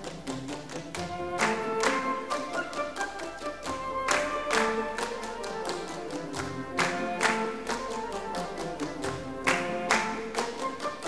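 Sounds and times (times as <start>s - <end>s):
strings playing melody: 0.0s - 11.0s.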